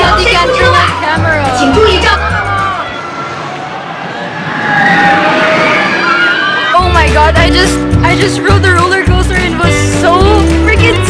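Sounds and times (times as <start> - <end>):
roller coaster rushing along track: 0.4 - 8.2.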